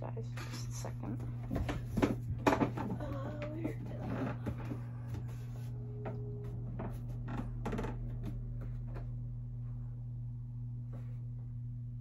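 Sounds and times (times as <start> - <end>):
low electrical hum: 0.0 - 12.0
faint knocks and shuffling: 0.2 - 10.0, 10.7 - 11.7.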